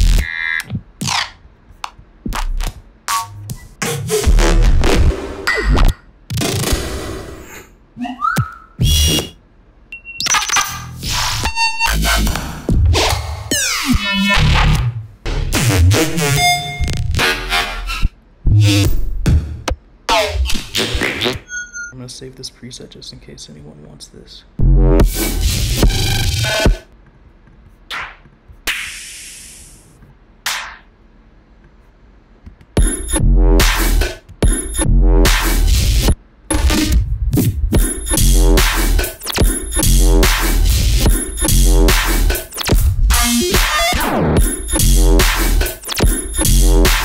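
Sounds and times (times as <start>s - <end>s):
hissy electronic snare: 28.7s - 29.9s.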